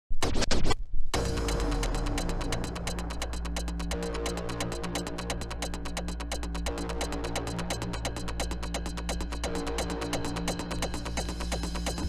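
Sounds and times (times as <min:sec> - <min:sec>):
hardcore techno track: 0:01.2 - 0:12.0.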